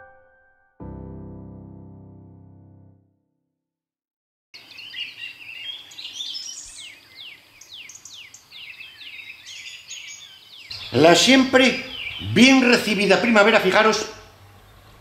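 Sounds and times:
songbird singing: 4.6 - 15.0.

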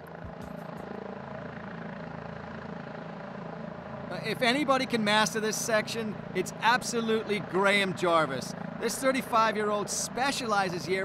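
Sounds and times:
dirt bike engine chugging: 0.0 - 11.0.

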